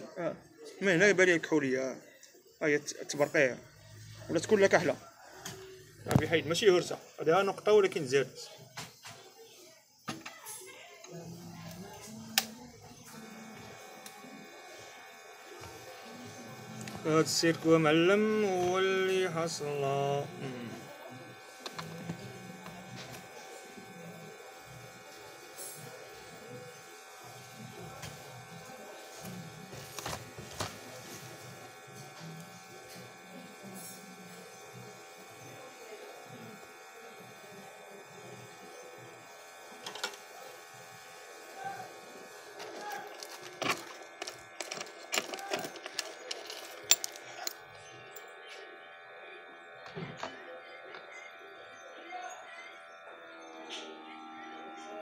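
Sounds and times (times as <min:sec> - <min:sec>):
faint background voices: 0:00.0 - 0:55.0
multi-tone electrical hum: 0:00.0 - 0:55.0.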